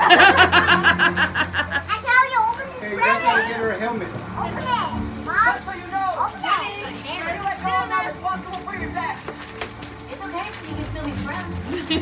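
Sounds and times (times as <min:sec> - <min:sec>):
adults and children talking: 0:01.2 - 0:12.0.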